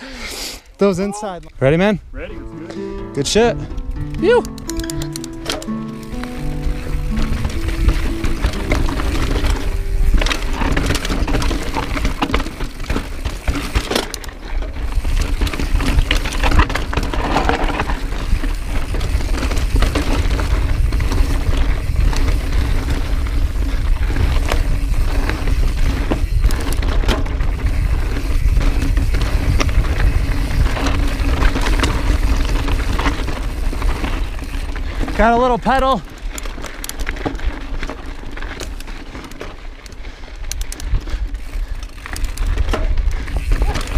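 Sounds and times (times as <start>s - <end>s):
mountain bike rattling over stones: 4.9s - 43.9s.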